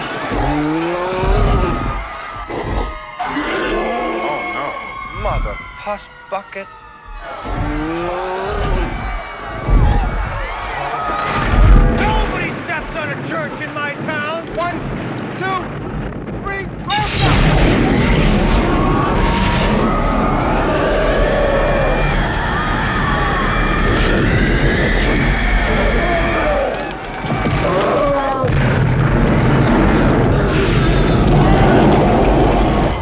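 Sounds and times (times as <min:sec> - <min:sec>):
rising and falling wails: 0:00.0 - 0:13.0, 0:17.1 - 0:33.0
heavy booming thuds: 0:01.2 - 0:03.2, 0:06.7 - 0:21.2.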